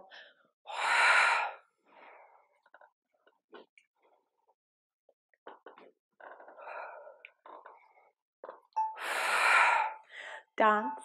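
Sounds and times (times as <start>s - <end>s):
woman breathing sharply: 8.9s - 10.5s.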